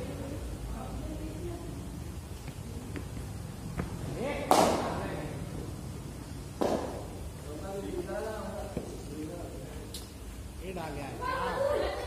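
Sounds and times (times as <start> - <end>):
bat striking cricket ball: 4.5 - 4.9, 6.6 - 7.1.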